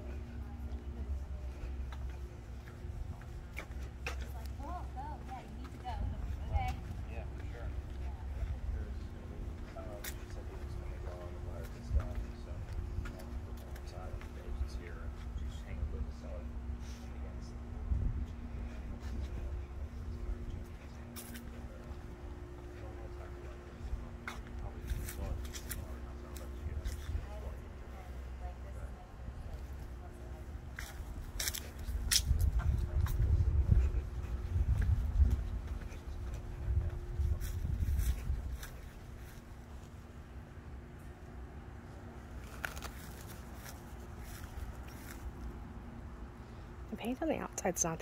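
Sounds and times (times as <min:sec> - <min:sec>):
low steady rumble: 0:00.0 - 0:48.0
steady low hum: 0:00.0 - 0:48.0
wind rumbling on microphone: 0:17.6 - 0:21.0, 0:31.0 - 0:39.2
footsteps on grass: 0:19.2 - 0:27.8, 0:30.6 - 0:40.1, 0:42.3 - 0:45.5.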